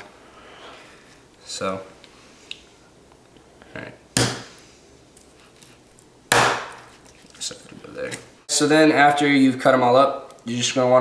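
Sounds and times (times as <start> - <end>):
knife chopping through bone: 4.2 - 4.5, 6.3 - 6.9.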